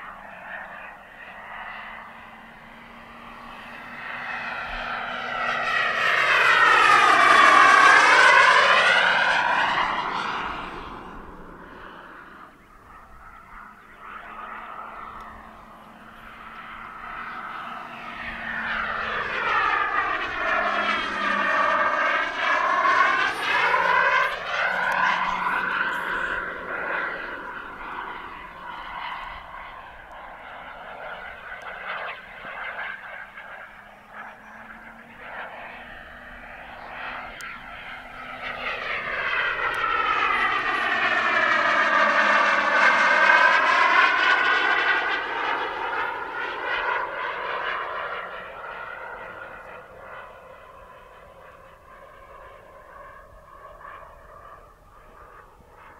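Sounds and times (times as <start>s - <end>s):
model jet turbine passing: 0.0s - 55.9s.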